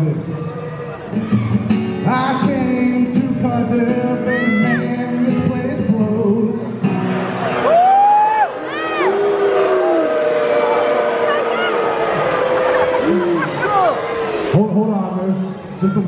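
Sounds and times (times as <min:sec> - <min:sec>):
crowd shouting and calling out: 0:00.0 - 0:06.0, 0:06.6 - 0:16.0
acoustic guitar: 0:00.0 - 0:07.7.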